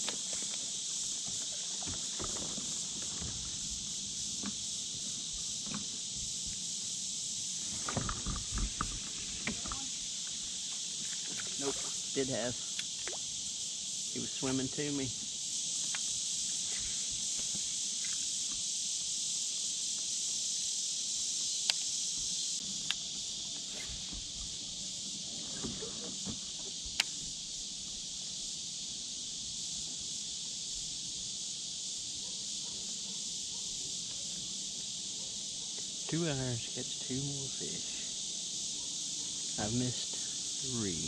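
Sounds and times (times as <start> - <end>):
high-pitched insect chorus: 0.0 - 41.0
sharp ticks: 21.6 - 21.9, 26.9 - 27.2.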